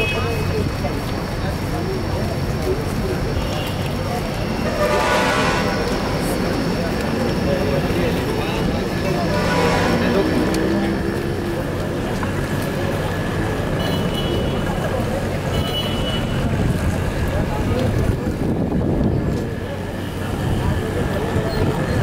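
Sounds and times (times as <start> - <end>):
crowd walking and talking: 0.0 - 22.0
traffic engines rumbling: 0.0 - 22.0
car horn toots: 4.7 - 6.0.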